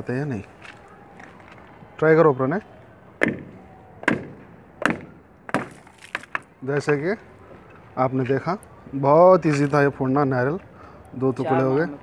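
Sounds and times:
coconut shell splitting: 0:04.1 - 0:06.5.

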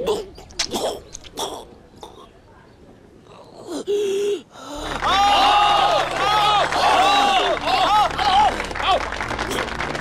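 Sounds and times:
person gasping: 0:03.7 - 0:04.9.

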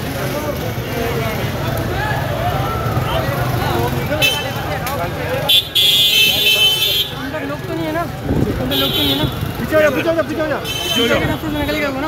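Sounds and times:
crowd talking: 0:00.0 - 0:12.0
low street rumble: 0:00.0 - 0:12.0.

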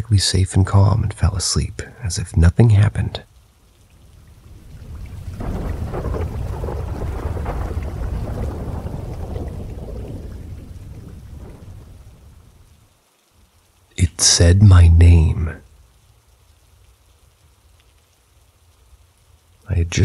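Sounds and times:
rain: 0:00.0 - 0:20.0
thunder rumbling: 0:04.0 - 0:12.9.

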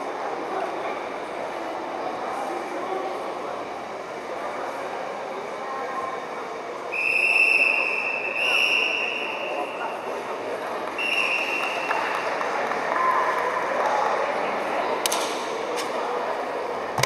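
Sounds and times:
murmur of spectators' voices: 0:00.0 - 0:17.0
referee's whistle blast: 0:07.0 - 0:09.7.

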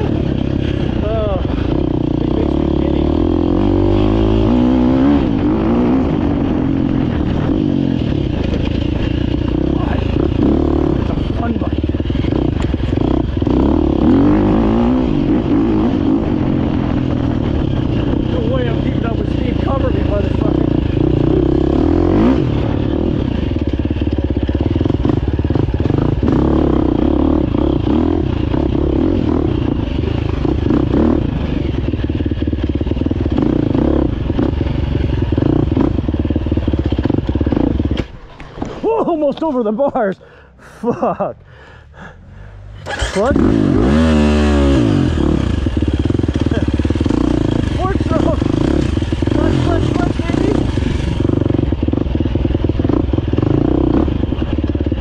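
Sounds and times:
dirt bike engine running: 0:00.0 - 0:55.0.

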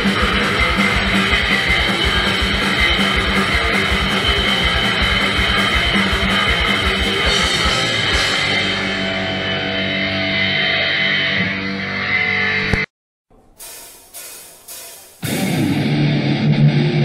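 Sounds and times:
distorted electric guitars: 0:00.0 - 0:17.0.

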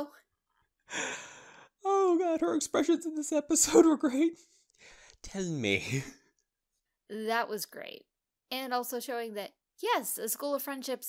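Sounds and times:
person sighing: 0:00.9 - 0:02.1.

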